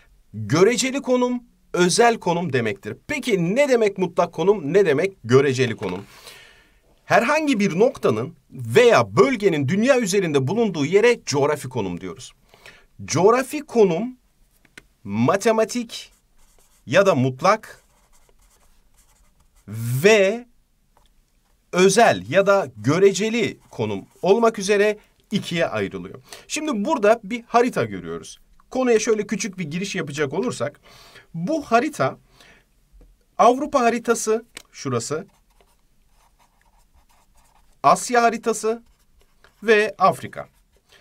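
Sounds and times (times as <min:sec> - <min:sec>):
man speaking: 0:00.3 - 0:06.1, 0:07.0 - 0:12.4, 0:13.0 - 0:14.2, 0:15.0 - 0:16.2, 0:16.9 - 0:17.9, 0:19.7 - 0:20.5, 0:21.7 - 0:32.2, 0:33.4 - 0:35.4, 0:37.4 - 0:38.9, 0:39.6 - 0:40.6
marker scratching on paper: 0:16.1 - 0:16.9, 0:17.6 - 0:19.7, 0:23.0 - 0:24.6, 0:35.2 - 0:39.7.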